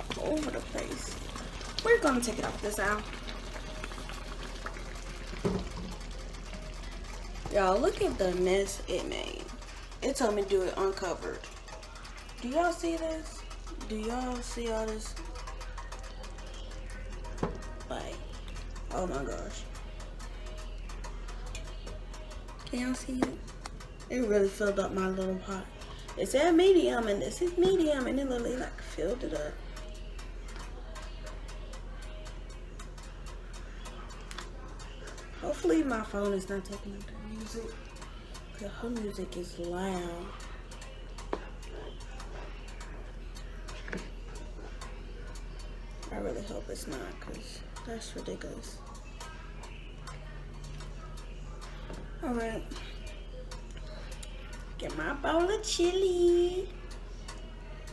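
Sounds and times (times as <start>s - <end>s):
chili bubbling and popping: 0.0s - 52.9s
faint music: 0.0s - 57.9s
spatula stirring a pot: 0.0s - 57.9s.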